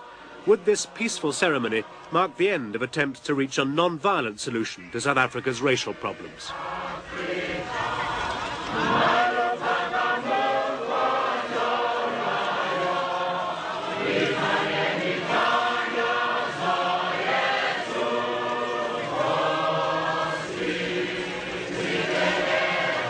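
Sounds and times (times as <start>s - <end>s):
choir chanting: 0.0s - 3.1s, 5.4s - 23.0s.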